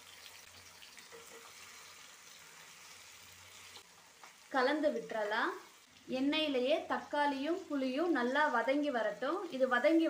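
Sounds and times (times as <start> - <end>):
tomatoes sizzling in oil: 0.0 - 10.0.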